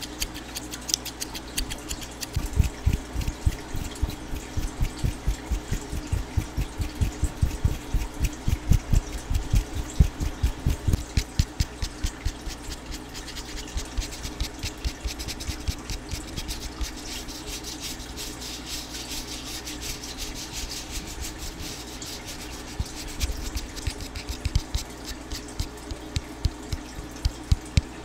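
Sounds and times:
fingertips thumping microphone grille: 0.0s - 17.7s, 18.8s - 28.0s
crisp scratching and clicking: 0.0s - 28.0s.

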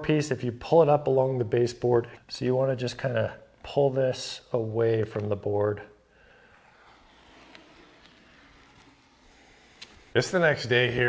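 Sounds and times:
tape being peeled off: 6.4s - 10.1s.

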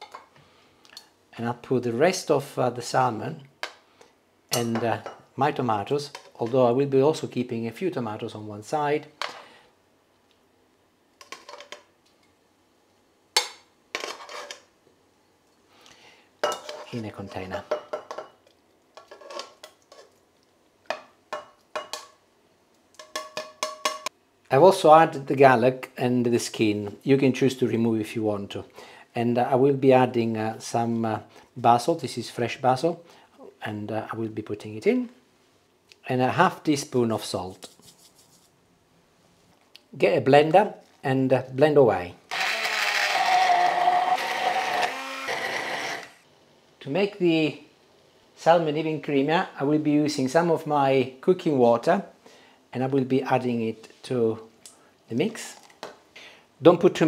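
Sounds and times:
immersion blender motor whine: 42.3s - 46.2s.

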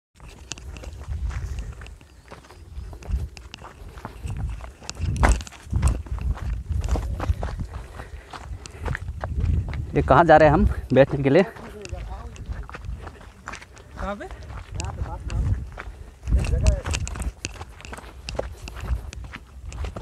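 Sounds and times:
footsteps crunching on dirt path: 0.2s - 20.0s
low rumble on microphone: 4.2s - 10.8s.

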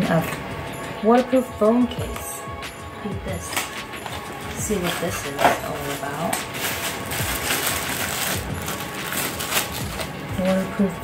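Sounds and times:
plastic bag crinkling: 3.5s - 10.6s.

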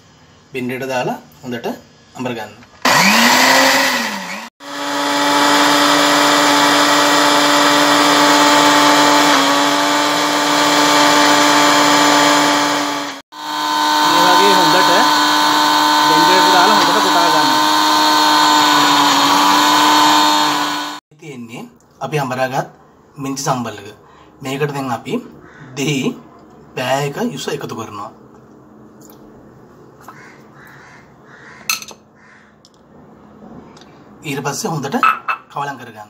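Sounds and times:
electric blender grinding: 2.8s - 21.0s.

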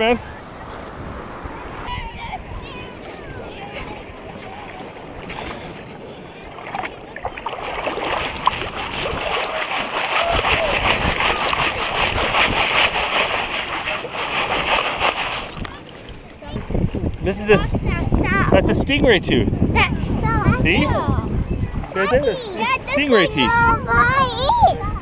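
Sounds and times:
faint voices: 1.4s - 8.3s
water sloshing through sifting basket: 6.6s - 16.4s.

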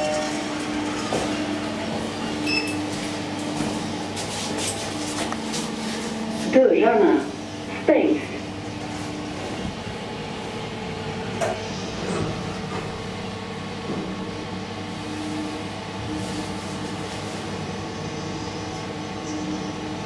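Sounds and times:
elevator running hum: 0.0s - 20.0s.

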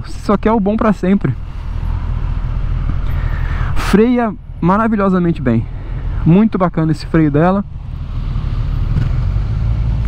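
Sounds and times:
motorcycle engine low rumble: 0.0s - 10.0s.

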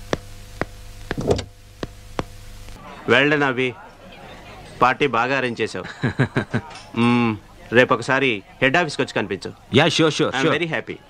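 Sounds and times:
car door opening: 1.2s - 1.5s.

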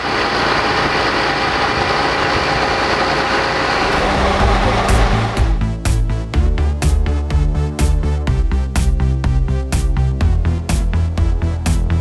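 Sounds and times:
diesel truck engine running: 0.0s - 12.0s
mixing drum turning: 0.8s - 6.1s
background music with low beat: 3.8s - 12.0s.

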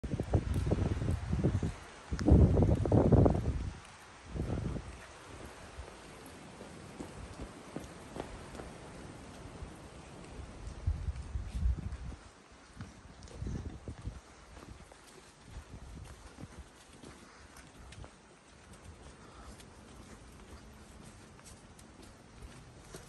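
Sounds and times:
wind gusting across microphone: 0.0s - 18.3s
footsteps on cobblestones: 0.0s - 23.0s.

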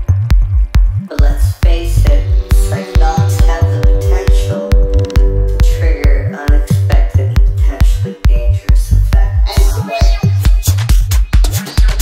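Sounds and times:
rolling bass notes: 0.0s - 9.8s
kick drum: 0.0s - 12.0s
held synth chords: 0.5s - 9.7s.

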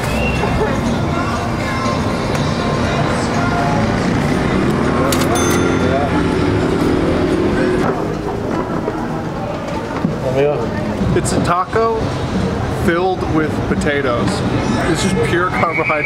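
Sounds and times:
music playing: 0.0s - 7.8s
traffic: 0.0s - 16.0s
people talking: 12.8s - 16.0s.

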